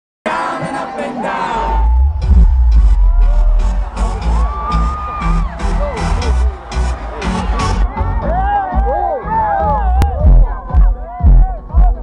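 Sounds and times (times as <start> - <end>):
crowd screaming and whooping: 0.4 - 12.0
heavy bass beat: 1.5 - 12.0.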